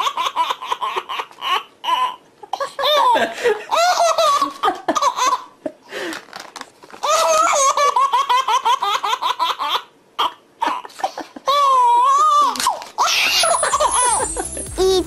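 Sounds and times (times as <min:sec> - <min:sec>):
baby laughing: 0:00.0 - 0:05.6, 0:07.0 - 0:15.0.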